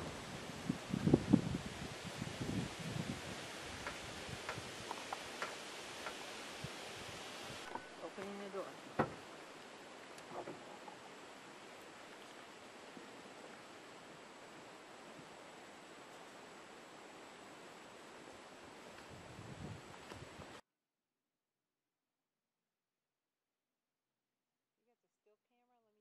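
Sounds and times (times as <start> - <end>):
outdoor background hiss: 0.0 - 20.6.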